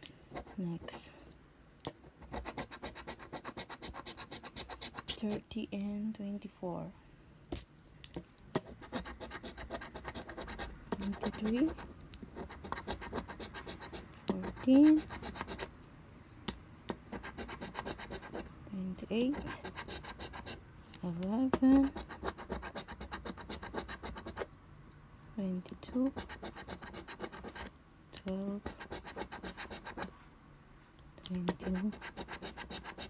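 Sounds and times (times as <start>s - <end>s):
coin scratching lottery ticket: 2.2s - 5.3s, 8.6s - 15.7s, 17.1s - 18.4s, 19.2s - 20.6s, 21.8s - 24.4s, 26.1s - 27.7s, 28.6s - 30.1s, 31.5s - 33.0s.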